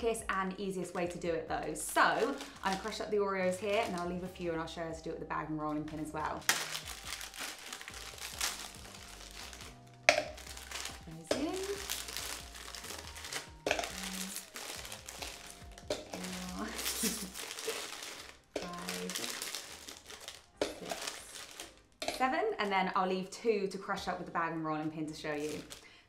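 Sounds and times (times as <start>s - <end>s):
plastic packet crinkling: 0.8s - 4.4s, 5.8s - 22.2s, 25.2s - 26.0s.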